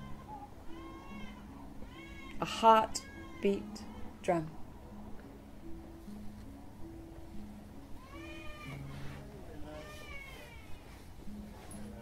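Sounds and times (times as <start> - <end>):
meow-like cries: 0.0 - 4.1, 8.0 - 9.0, 9.6 - 10.8
soft background music: 0.0 - 12.0.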